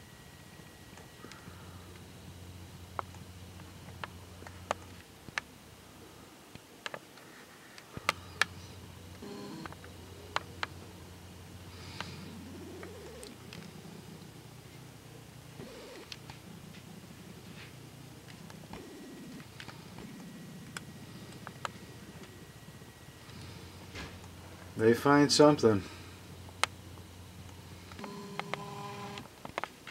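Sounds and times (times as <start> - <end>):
faint low hum: 0.0 - 29.9.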